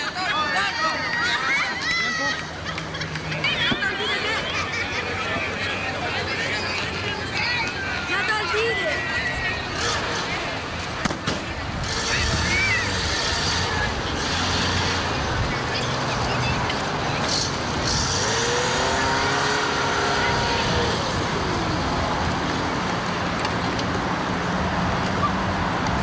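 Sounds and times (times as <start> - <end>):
small car engine running: 9.2 - 26.0.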